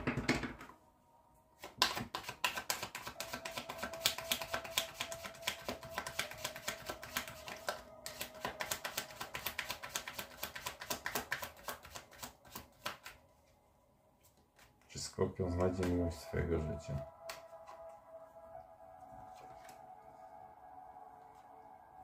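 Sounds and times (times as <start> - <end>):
cards being shuffled: 1.6 - 13.2, 14.2 - 15.0.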